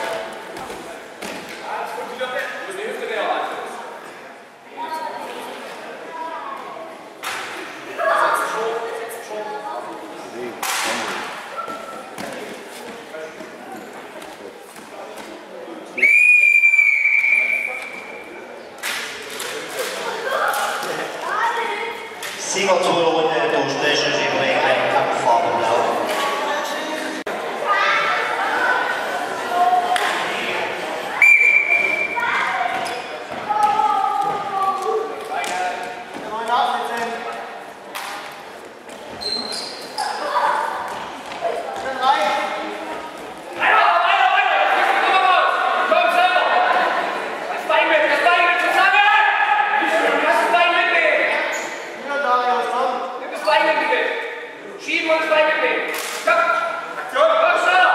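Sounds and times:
voices calling out in a hall: 0.0 - 57.9
referee's whistle long blast: 16.0 - 18.0.

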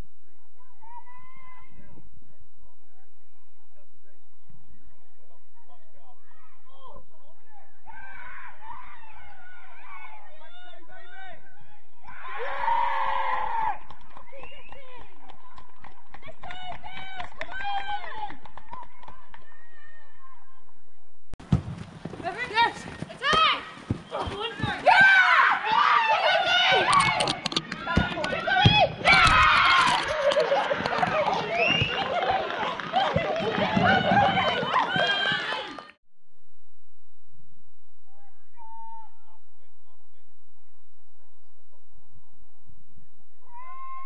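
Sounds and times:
voices calling on field: 5.2 - 20.2, 22.2 - 36.0
footballers shouting: 12.1 - 13.8, 22.2 - 36.0
boots kicking ball: 21.4 - 25.8.

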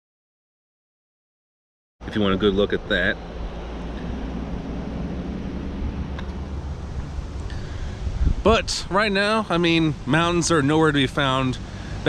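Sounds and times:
low rumble: 2.2 - 10.6
even hiss: 5.9 - 12.0.

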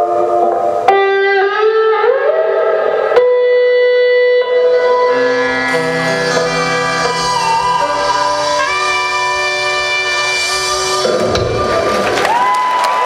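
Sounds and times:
electric guitar: 0.0 - 13.0.

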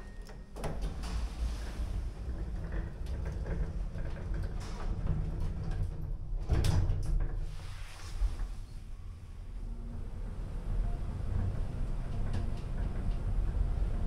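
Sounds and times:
lift doors sliding closed: 0.0 - 8.8.

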